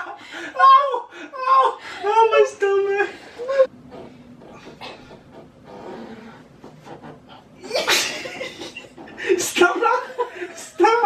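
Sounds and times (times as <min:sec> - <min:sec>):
people laughing: 0:07.6 - 0:11.0.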